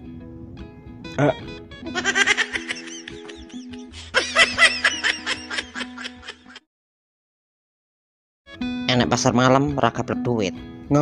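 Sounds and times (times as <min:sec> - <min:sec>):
cartoon voice snickering laughs: 0:02.0 - 0:06.6.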